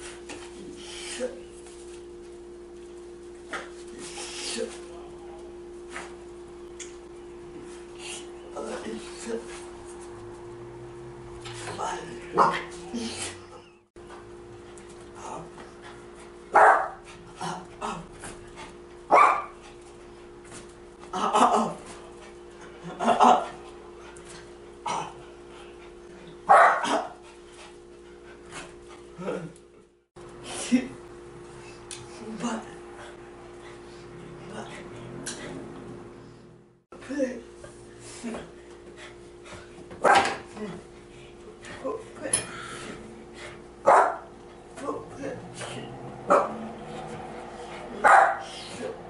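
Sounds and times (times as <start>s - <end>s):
dog barking: 12.3s - 12.7s, 16.5s - 17.0s, 19.1s - 19.6s, 26.5s - 27.2s, 40.0s - 40.4s, 43.8s - 44.3s, 46.3s - 46.7s, 48.0s - 48.6s.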